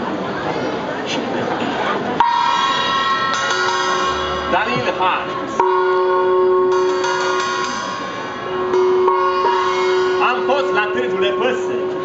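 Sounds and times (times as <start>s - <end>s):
long held instrumental notes: 2.2s - 12.0s.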